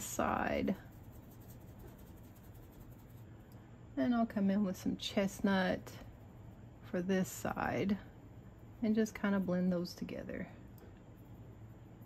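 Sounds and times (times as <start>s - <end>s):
paintbrush scratching: 0.0s - 3.4s
low room hum: 0.0s - 12.0s.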